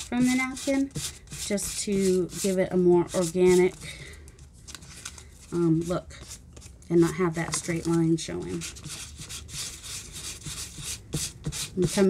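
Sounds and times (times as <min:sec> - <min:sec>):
sanding paper rasping strokes: 0:00.0 - 0:03.8, 0:08.4 - 0:12.0.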